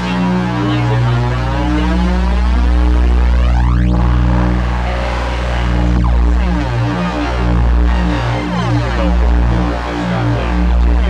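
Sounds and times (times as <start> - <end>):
bass drone music: 0.0 - 11.0.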